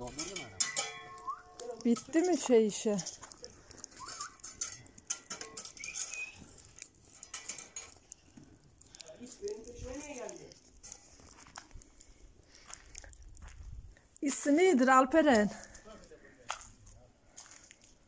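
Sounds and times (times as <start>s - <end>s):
wood fire crackling: 0.0s - 18.0s.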